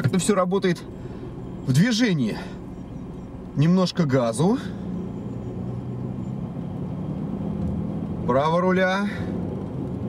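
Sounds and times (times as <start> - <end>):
low engine hum: 0.0 - 10.0
road noise: 0.0 - 10.0.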